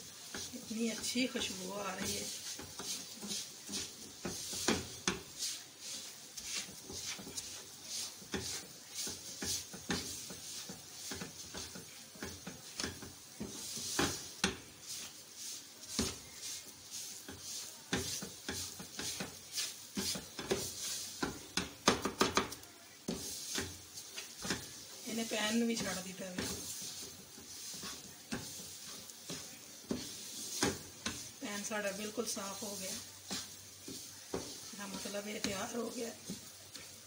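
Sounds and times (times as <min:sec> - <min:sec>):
spatula scraping frying pan: 0:00.0 - 0:37.0.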